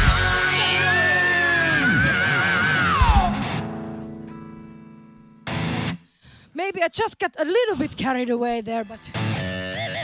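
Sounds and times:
drums: 0.0 - 3.9
distorted guitars: 0.0 - 6.1, 8.7 - 10.0.

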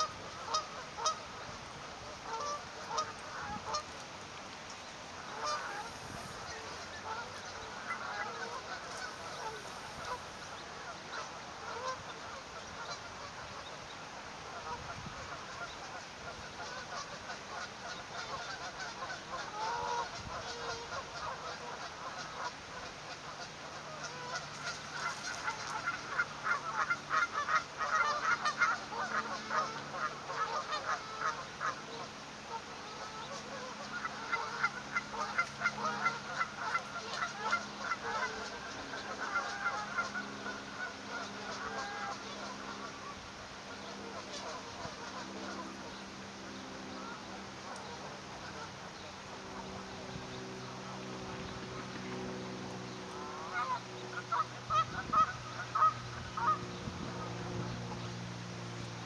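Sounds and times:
waterfowl honking: 0.0 - 4.0, 5.2 - 58.1.

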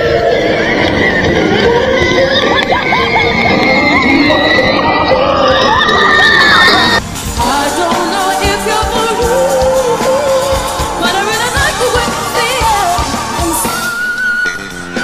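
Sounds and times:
live band with drums: 6.4 - 15.0.

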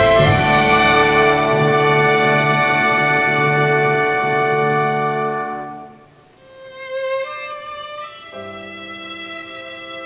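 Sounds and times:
orchestra sustained chord: 0.0 - 6.1.

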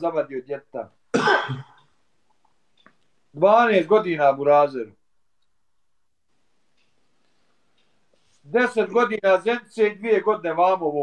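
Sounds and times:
man clearing throat: 1.1 - 1.8.

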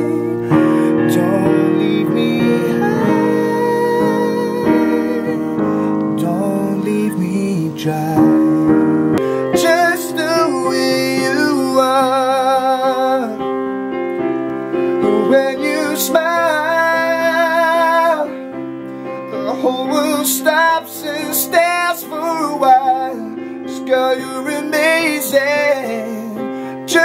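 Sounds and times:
man singing with vibrato: 0.0 - 13.5, 14.8 - 18.5, 19.3 - 27.0
piano chords: 0.0 - 27.0.

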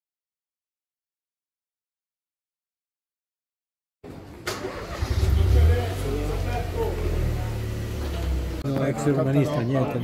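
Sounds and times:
car engine running: 5.0 - 8.6
voices talking: 5.0 - 10.0.

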